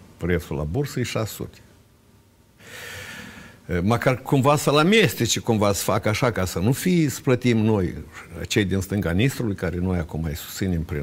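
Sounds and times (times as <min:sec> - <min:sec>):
man breathing: 0:02.6 - 0:03.7.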